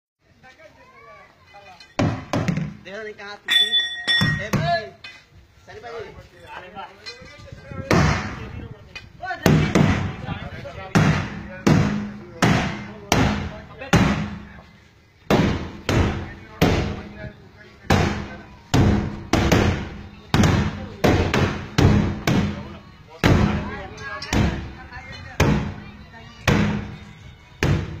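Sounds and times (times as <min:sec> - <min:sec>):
low metallic ringing: 0:03.5 - 0:04.5.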